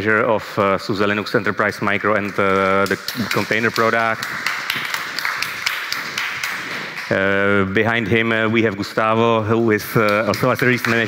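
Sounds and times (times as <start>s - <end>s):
audience applauding: 1.7s - 7.4s, 9.9s - 11.0s.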